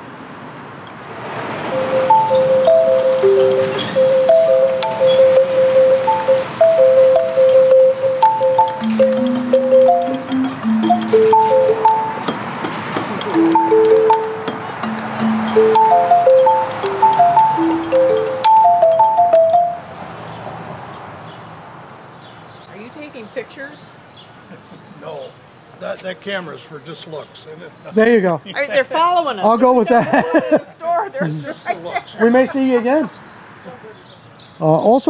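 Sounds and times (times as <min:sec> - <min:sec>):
metallophone melody: 0:01.2 - 0:19.9.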